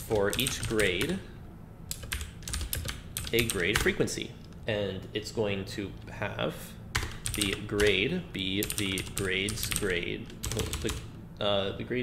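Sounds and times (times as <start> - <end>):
keyboard keys clicking: 1.9 - 4.0, 7.0 - 8.0, 8.6 - 11.0.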